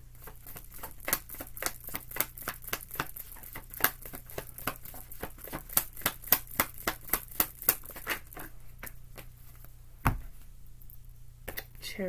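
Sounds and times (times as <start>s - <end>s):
cards being shuffled: 0.2s - 9.7s.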